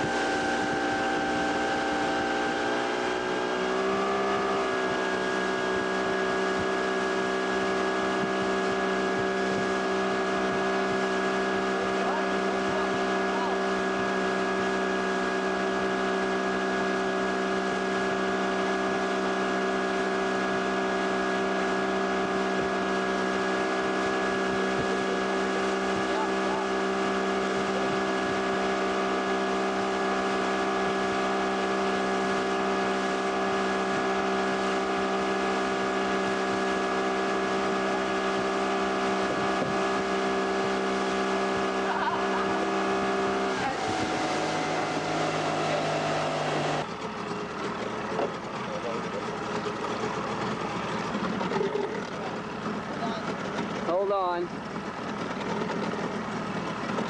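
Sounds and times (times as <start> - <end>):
outboard motor running: 0.0 - 57.0
water and wind noise: 0.0 - 57.0.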